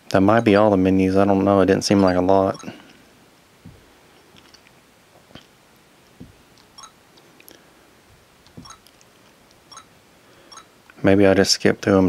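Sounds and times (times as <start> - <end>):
fingertip taps on touch screen: 8.5 - 8.9.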